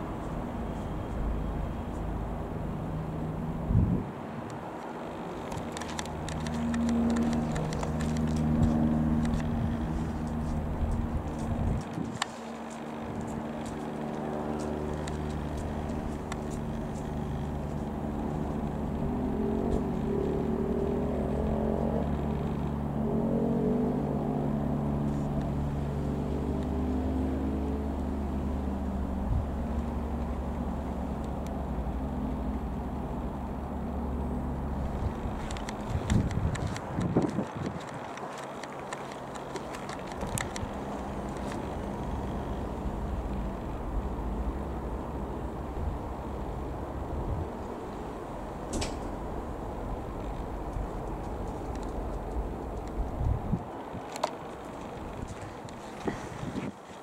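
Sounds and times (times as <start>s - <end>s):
propeller plane droning overhead: 0.0s - 57.0s.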